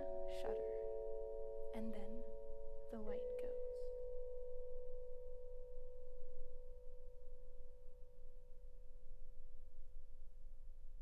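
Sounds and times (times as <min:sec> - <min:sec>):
vibraphone chord ringing: 0:00.0 - 0:03.9.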